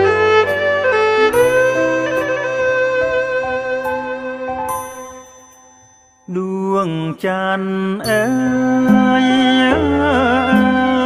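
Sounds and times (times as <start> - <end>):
accompanying music: 0.0 - 5.4, 6.4 - 11.0.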